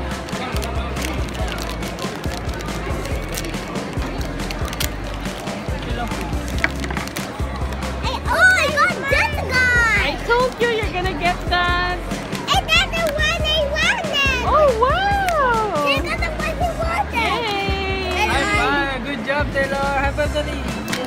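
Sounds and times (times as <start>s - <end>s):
foil packets crinkling and tearing: 0.1s - 7.4s.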